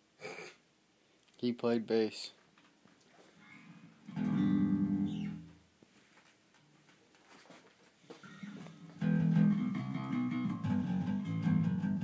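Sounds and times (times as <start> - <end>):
electric bass guitar note: 3.4 - 5.5, 8.3 - 12.0.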